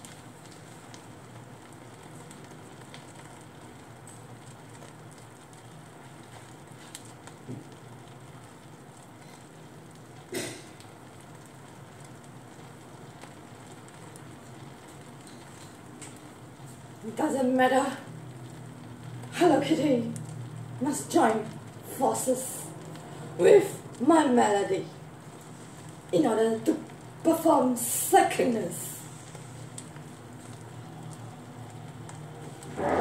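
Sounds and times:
food sizzling in a pan: 0.0s - 33.0s
popping and crackling: 0.0s - 33.0s.

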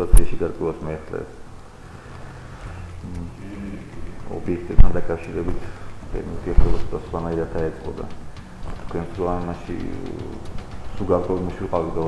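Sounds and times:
man talking: 0.0s - 1.4s, 3.0s - 12.0s
steady low hum: 0.0s - 12.0s.

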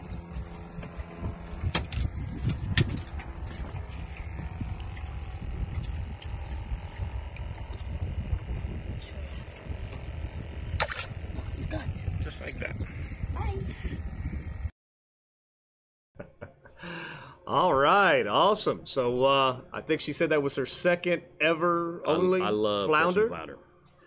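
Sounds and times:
wind buffeting microphone: 0.0s - 14.7s.

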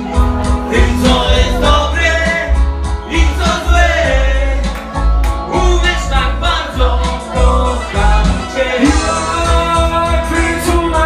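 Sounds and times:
backing track with bass beat: 0.0s - 11.0s
man singing into microphone: 0.5s - 4.8s, 5.4s - 11.0s.

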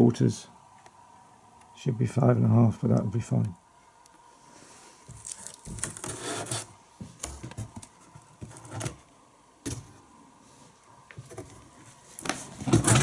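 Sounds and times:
rubbing and scraping handling noise: 4.4s - 9.1s, 10.4s - 13.0s.

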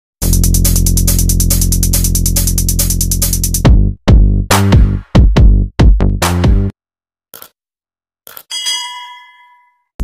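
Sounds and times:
bright bell ding: 8.5s - 9.9s.

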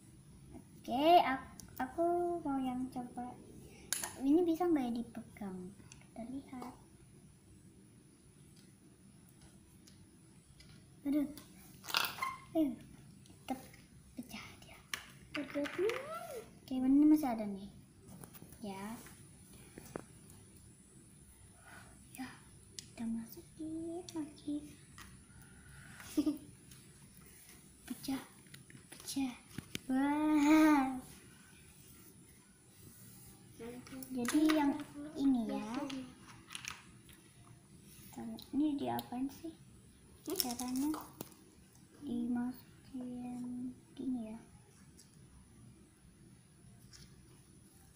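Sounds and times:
plastic toy parts clicking: 35.8s - 36.8s.

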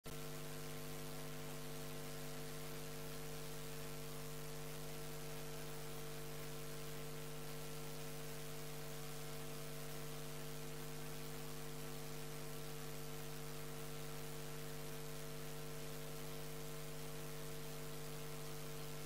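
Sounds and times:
electrical mains hum: 0.1s - 19.0s.

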